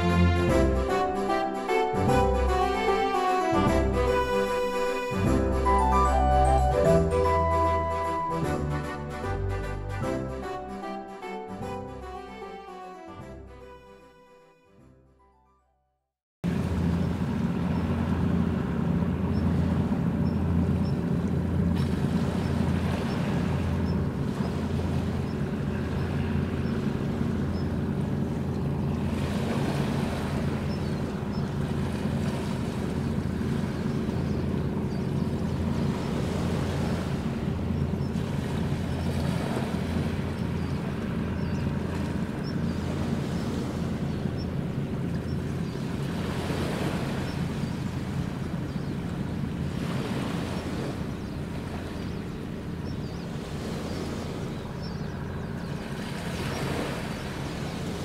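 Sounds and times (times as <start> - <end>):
water noise: 0.0 - 12.7, 16.4 - 58.0
wind: 0.0 - 14.3, 16.4 - 58.0
ship engines droning: 0.0 - 14.4, 16.5 - 58.0.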